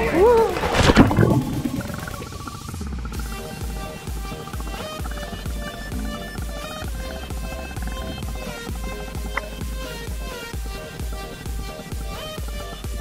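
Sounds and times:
water splash: 0.3 - 11.3
electronic music with steady beat: 1.1 - 13.0.

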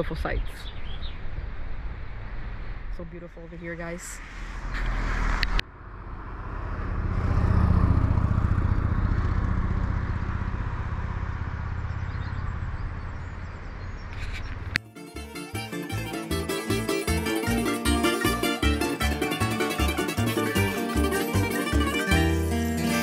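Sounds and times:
road vehicle rumble: 0.0 - 23.0
music with plucked strings: 14.8 - 23.0.

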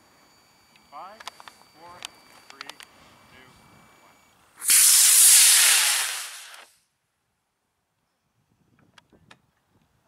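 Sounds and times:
model rocket motor hissing: 4.6 - 6.8.

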